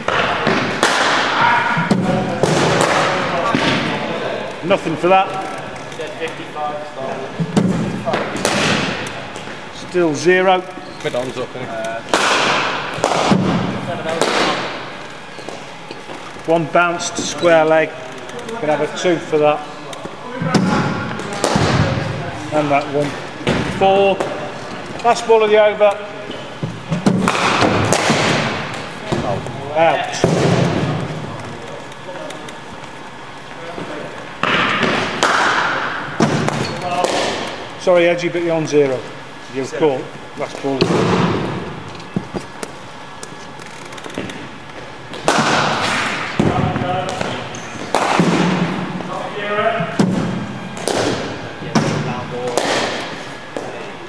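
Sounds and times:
cricket ball hitting bat: 12.1s - 14.6s, 34.4s - 37.5s, 45.1s - 46.7s.

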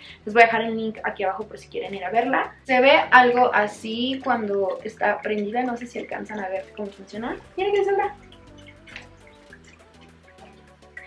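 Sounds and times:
water trickling: 0.0s - 11.0s
water fountain pump hum: 1.1s - 11.0s.

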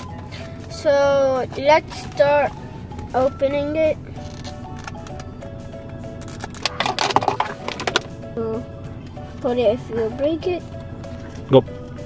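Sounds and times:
background music: 0.0s - 12.0s
crackly rustling and clicks: 4.2s - 5.4s, 6.2s - 8.2s.

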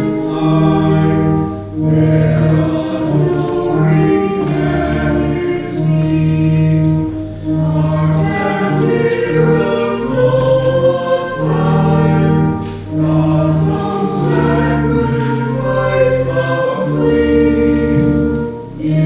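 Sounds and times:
choir singing a hymn: 0.0s - 19.0s.

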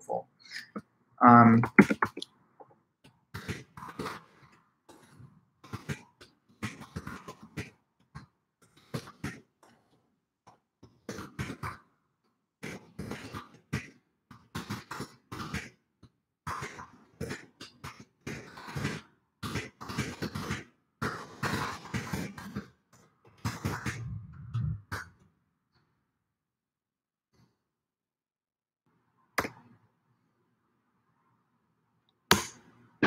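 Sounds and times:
sharp clicks or knocks: 1.6s - 2.2s.

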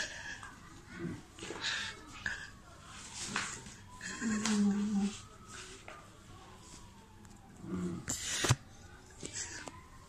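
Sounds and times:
boy reading aloud quietly: 0.0s - 7.2s.

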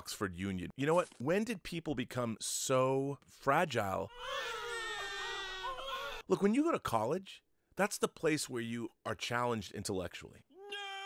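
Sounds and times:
high-pitched crying wail: 4.1s - 6.2s, 10.5s - 11.0s.

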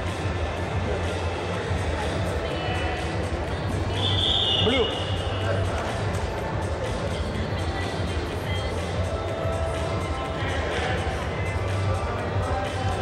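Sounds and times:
background music: 0.0s - 13.0s
crowd chatter: 0.0s - 13.0s.

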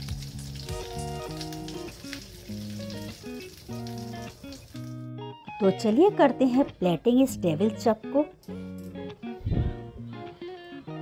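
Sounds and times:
hot oil sizzling: 0.0s - 9.4s
background music of held notes: 0.0s - 11.0s.

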